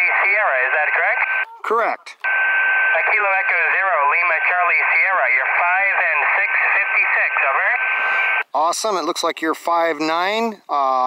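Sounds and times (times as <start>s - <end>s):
radio static: 0.0s - 8.7s
voice over radio speaker: 0.0s - 8.7s.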